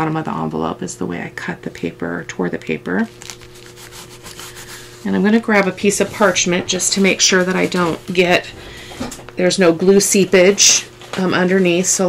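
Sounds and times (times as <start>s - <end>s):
hands rubbing paper: 3.1s - 8.5s.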